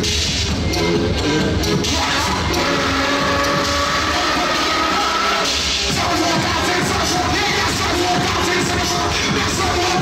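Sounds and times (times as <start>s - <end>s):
crowd noise: 0.0s - 10.0s
loud music over sound system: 0.0s - 10.0s.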